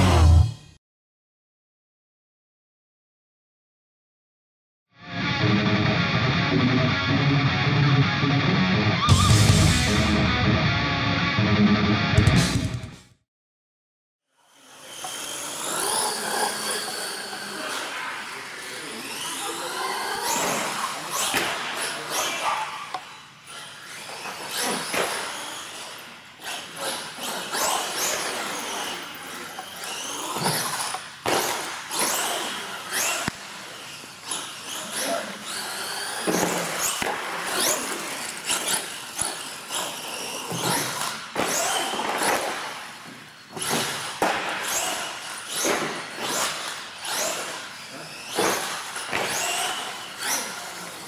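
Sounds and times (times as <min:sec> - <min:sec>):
electric toy truck motor whining: 0:14.4 - 0:21.3, 0:22.9 - 0:51.0.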